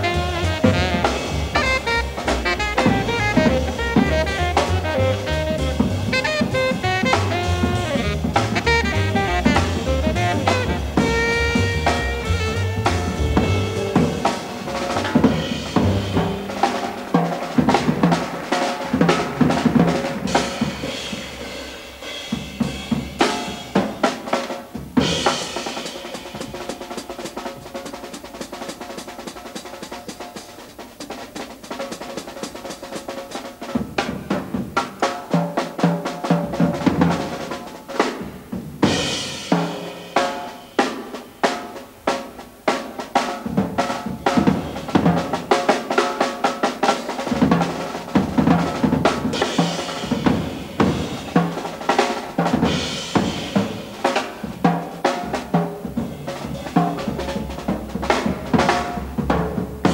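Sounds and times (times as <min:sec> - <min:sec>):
jazz drum kit playing: 0:00.0 - 0:59.9.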